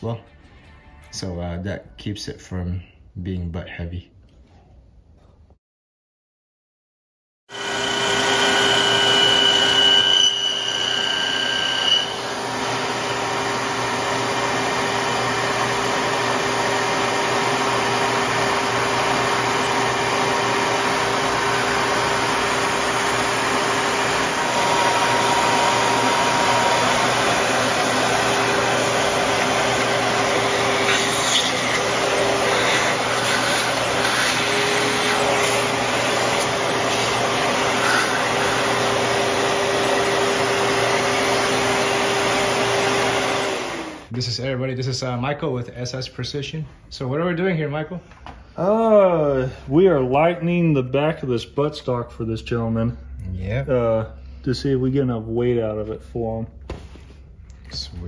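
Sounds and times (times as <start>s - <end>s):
milling machine running: 7.6s - 44.1s.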